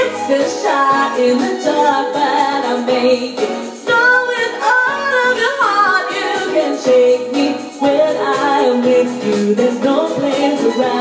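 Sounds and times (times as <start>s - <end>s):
woman singing melodic run: 0.0s - 11.0s.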